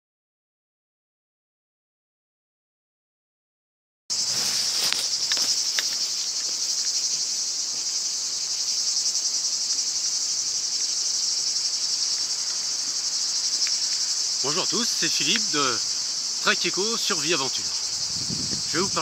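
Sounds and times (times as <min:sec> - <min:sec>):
cicadas buzzing: 0:04.1 - 0:19.0
faint clicks: 0:13.6 - 0:14.0.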